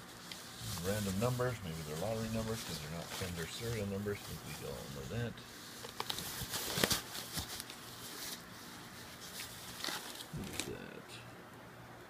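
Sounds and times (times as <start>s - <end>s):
foam packing sheet rustling: 0.0s - 10.8s.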